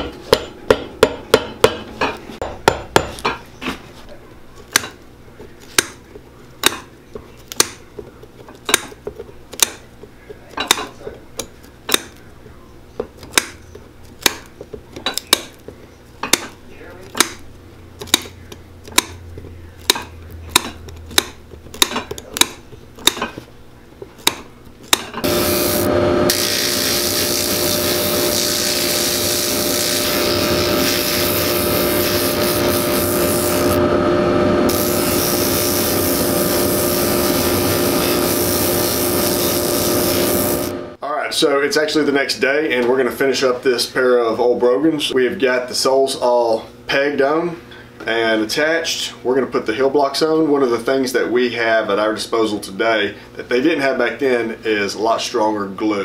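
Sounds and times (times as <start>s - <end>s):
nippers snipping pegs: 5.6s - 6.0s, 6.6s - 9.9s, 10.7s - 12.2s, 13.2s - 17.4s, 18.0s - 23.4s, 24.1s - 25.2s
rotary sanding disc grinding: 25.2s - 40.9s.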